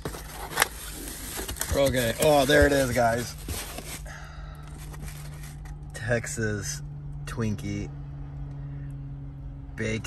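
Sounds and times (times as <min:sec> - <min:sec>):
faint handling noises: 0:00.0 - 0:05.9
car cabin hum: 0:00.0 - 0:06.4.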